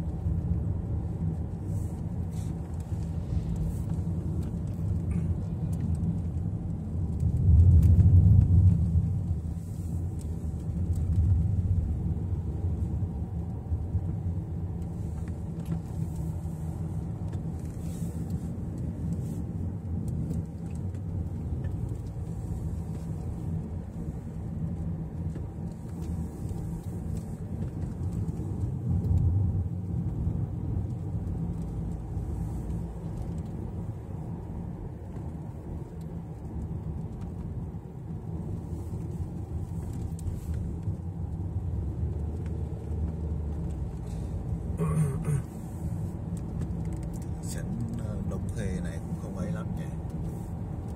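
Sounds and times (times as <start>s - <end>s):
car engine and road noise: 0.0s - 50.9s.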